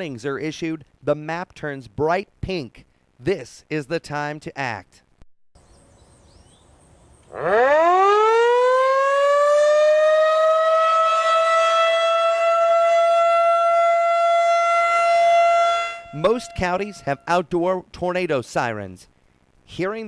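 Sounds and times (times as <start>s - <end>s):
tornado warning siren wailing: 7.3s - 17.5s.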